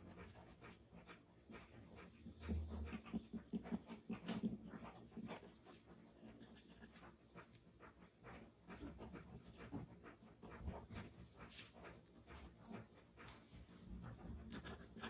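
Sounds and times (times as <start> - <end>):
pencil scratching on paper: 0.0 - 15.0.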